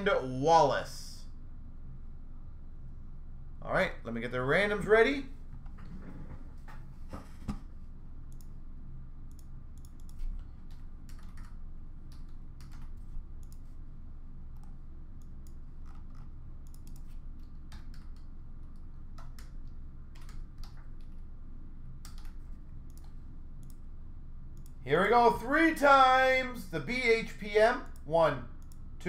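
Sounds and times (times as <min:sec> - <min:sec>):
faint low hum: 0:00.0 - 0:29.0
computer keyboard typing: 0:09.3 - 0:13.6, 0:15.5 - 0:18.3, 0:19.2 - 0:21.2, 0:22.0 - 0:23.8.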